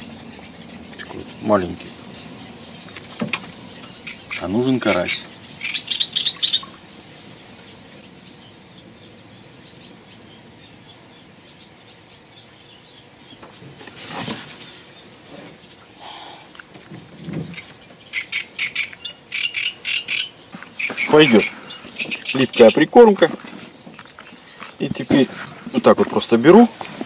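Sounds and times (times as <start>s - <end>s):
small birds chirping: 0.0s - 27.0s
rustling noise: 13.4s - 15.7s, 20.5s - 27.0s.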